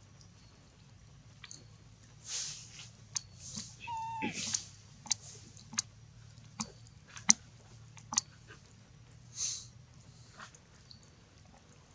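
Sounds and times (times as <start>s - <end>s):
monkey squeak: 3.8s - 4.6s.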